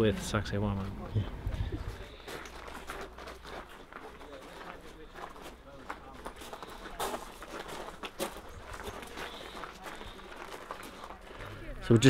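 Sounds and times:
faint footsteps on stony ground: 0:00.0 - 0:12.0.

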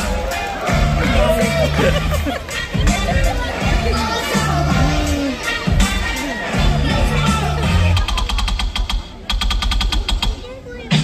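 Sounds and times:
music over public-address system: 0:00.0 - 0:11.0
rapid sharp clicks: 0:08.0 - 0:10.4.

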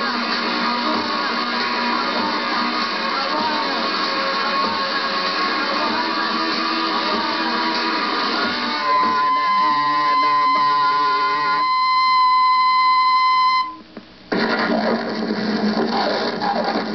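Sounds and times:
noisy jumble: 0:00.0 - 0:16.9
strummed electric guitar: 0:00.0 - 0:16.9.

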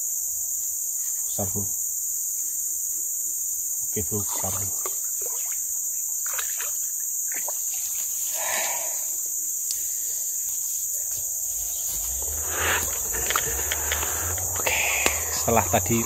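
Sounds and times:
insects chirring: 0:00.0 - 0:16.0
splashing: 0:04.3 - 0:08.2
rumbling handling noise: 0:11.1 - 0:16.0.

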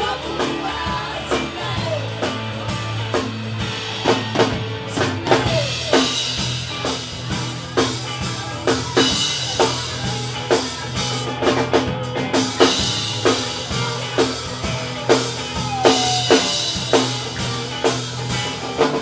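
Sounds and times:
drum kit beat: 0:00.0 - 0:19.0
live rock band playing: 0:00.0 - 0:19.0.

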